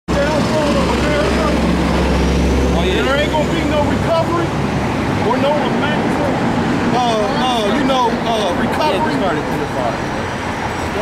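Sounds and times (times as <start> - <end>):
people talking: 0.1 - 1.7, 2.7 - 4.6, 5.2 - 10.2
vehicle engine drone: 0.1 - 11.0.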